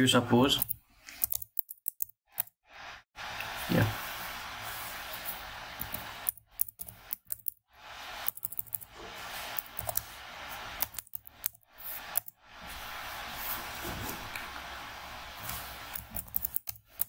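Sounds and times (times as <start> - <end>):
computer keyboard typing: 0.4 - 2.6, 5.1 - 12.4, 15.4 - 17.0
steady hiss: 2.8 - 17.0.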